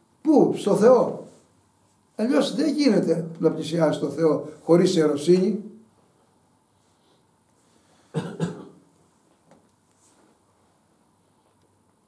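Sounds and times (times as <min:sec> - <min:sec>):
man coughing: 0:08.2 - 0:08.8.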